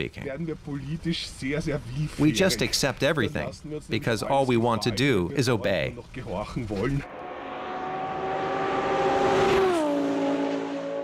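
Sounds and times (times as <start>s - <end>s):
car engine passing by: 7.0s - 11.0s.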